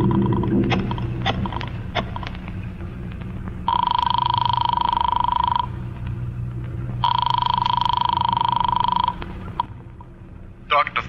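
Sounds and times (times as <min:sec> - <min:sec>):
low recording hum: 0:00.0 - 0:11.0
telephone bell ringing: 0:03.7 - 0:05.7, 0:07.0 - 0:09.7.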